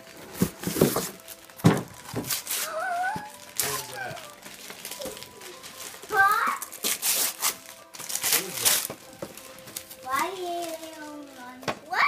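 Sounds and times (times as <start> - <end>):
wrapping paper ripping: 0.0 - 12.0.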